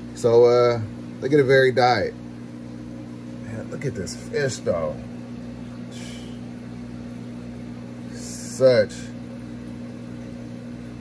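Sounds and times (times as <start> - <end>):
pump electrical hum: 0.0 - 11.0.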